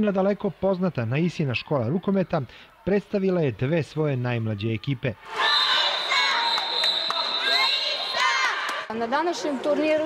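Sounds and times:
children calling and cheering: 4.4 - 10.0
girls clapping hands: 6.4 - 8.9.

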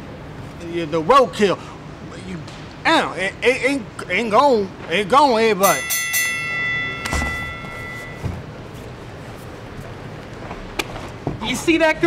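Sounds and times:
bell-like chime ringing: 5.6 - 8.4.

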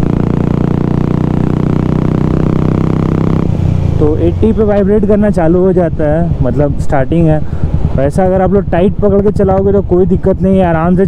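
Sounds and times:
motorcycle engine cruising: 0.0 - 11.0.

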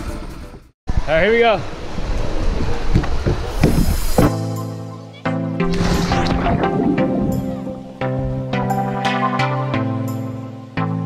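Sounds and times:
wind buffeting microphone: 0.9 - 4.2, 6.0 - 8.5.

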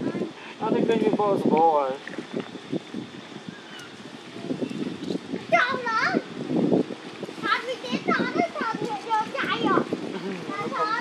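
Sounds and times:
children chattering: 0.0 - 0.4, 3.7 - 6.4, 7.4 - 11.0.

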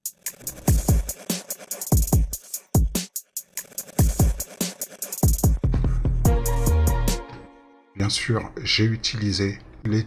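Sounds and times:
hi-hat and snare hits: 0.0 - 7.2
electronic kick drums: 0.7 - 1.3, 1.9 - 4.6, 5.2 - 7.2.

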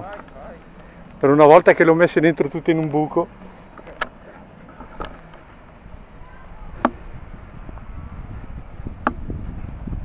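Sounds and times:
sharp knocks: 6.8 - 7.0.

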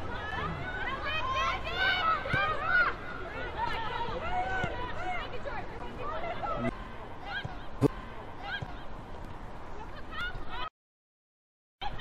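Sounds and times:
voices calling out and chattering: 0.0 - 10.7.

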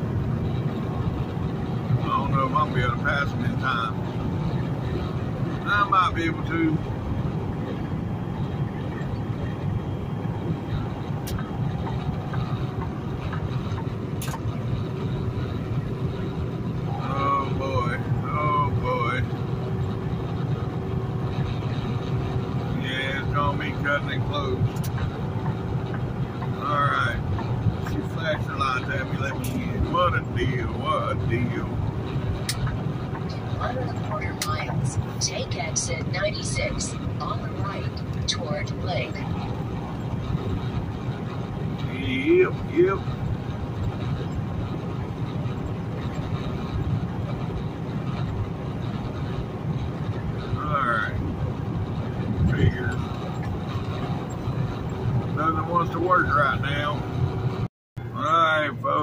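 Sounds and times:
truck diesel engine and road noise: 0.0 - 59.0
person talking: 33.3 - 39.3.

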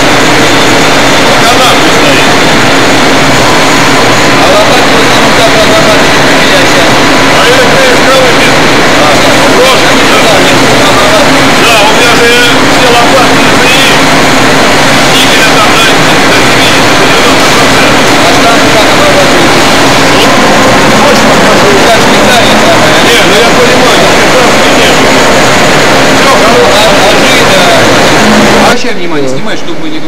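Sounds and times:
indistinct voices: 0.0 - 30.0
machine tools running: 0.0 - 30.0.

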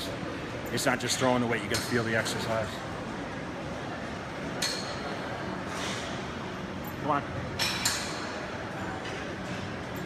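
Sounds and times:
gym room noise: 0.0 - 10.0.

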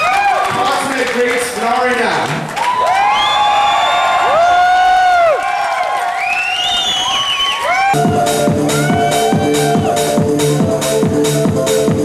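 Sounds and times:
crowd cheering and whooping: 0.0 - 0.8, 2.5 - 10.2
electronic dance music: 7.8 - 12.0.

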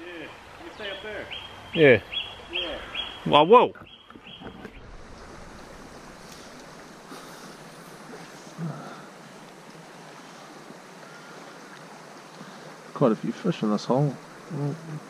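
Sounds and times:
stream flowing over gravel: 4.1 - 15.0.

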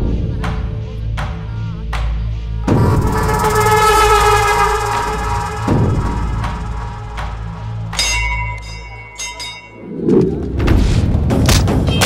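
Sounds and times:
dramatic film score: 0.0 - 12.0
loud low hit: 2.7 - 8.4
bell ringing: 3.0 - 9.9.

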